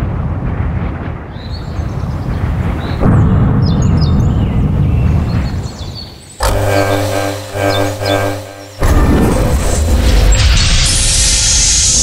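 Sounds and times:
high creaks and squeaks: 0:06.4 - 0:11.7
deep rumbling rush: 0:06.4 - 0:12.0.

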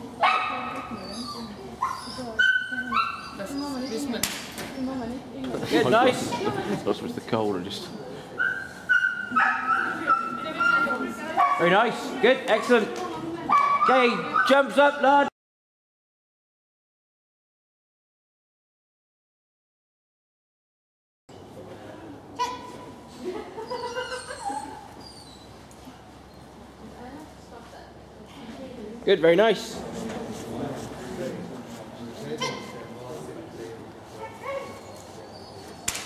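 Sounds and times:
dog barking and yelping: 0:00.2 - 0:03.5, 0:08.4 - 0:11.7, 0:13.5 - 0:14.6
dog whining: 0:00.5 - 0:04.2, 0:07.9 - 0:11.1, 0:22.4 - 0:22.9, 0:23.6 - 0:25.6, 0:32.3 - 0:32.8, 0:34.2 - 0:35.9.

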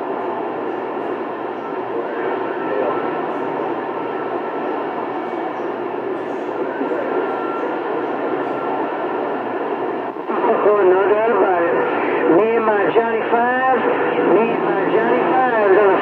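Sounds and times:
faint garbled distant voices: 0:00.0 - 0:16.0
radio static hiss: 0:00.0 - 0:16.0.

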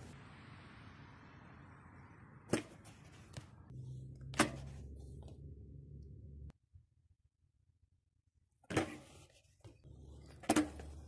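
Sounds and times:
bike striking concrete ledge: 0:02.5 - 0:02.8, 0:10.3 - 0:11.0
bike tyres rolling on concrete: 0:08.6 - 0:11.0.

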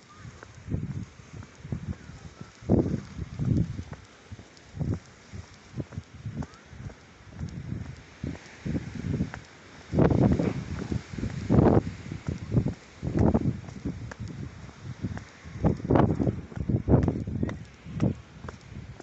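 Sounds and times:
footsteps on stone path: 0:00.0 - 0:19.0.

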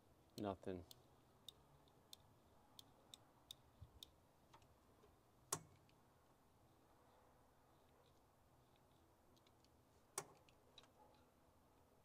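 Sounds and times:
small metallic clicks and taps: 0:08.7 - 0:11.2.

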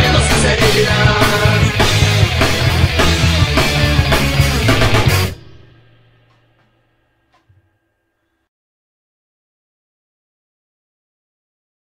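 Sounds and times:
drum kit playing: 0:00.0 - 0:06.7
rock band recording: 0:00.0 - 0:06.8.

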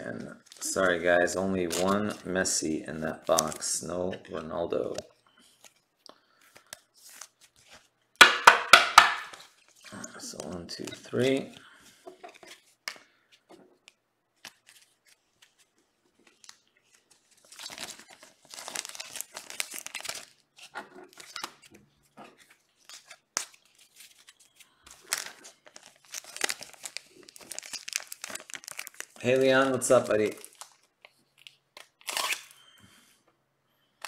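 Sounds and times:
plastic card sleeves crinkling: 0:00.2 - 0:07.9, 0:09.2 - 0:32.6.

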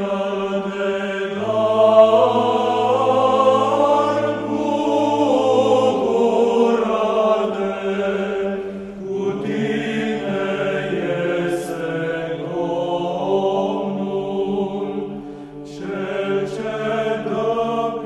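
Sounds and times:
low drone: 0:00.0 - 0:17.4
choral chant: 0:00.0 - 0:18.0.

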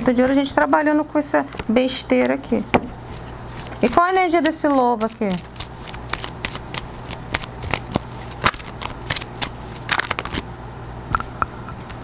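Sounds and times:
cards being shuffled: 0:03.1 - 0:10.4.

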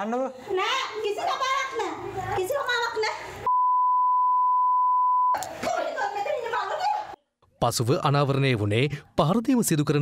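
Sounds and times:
censor bleep tone: 0:03.5 - 0:05.4.

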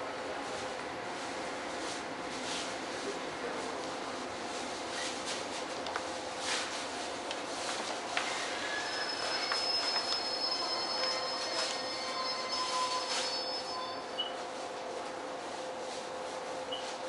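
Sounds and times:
train wheels squealing: 0:08.2 - 0:14.4.

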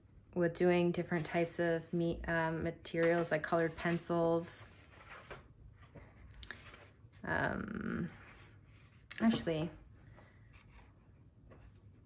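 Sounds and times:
paper pages rustling: 0:02.9 - 0:07.3, 0:08.1 - 0:12.0.

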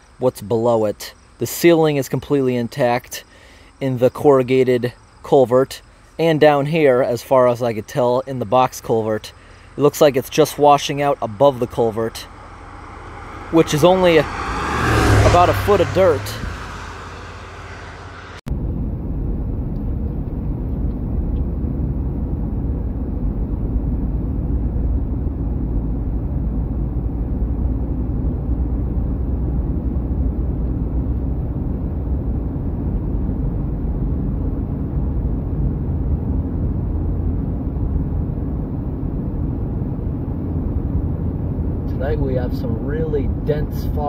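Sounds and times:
car engine and tyre rumble: 0:00.0 - 0:44.0.

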